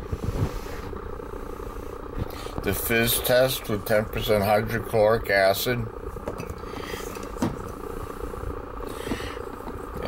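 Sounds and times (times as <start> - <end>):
small motor humming: 0.0 - 10.0.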